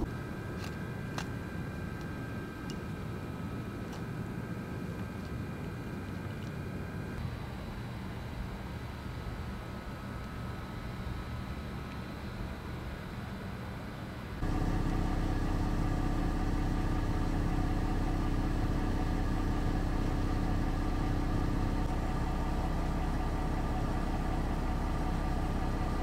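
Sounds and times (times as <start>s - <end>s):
vehicle engine idling: 14.4s - 26.0s.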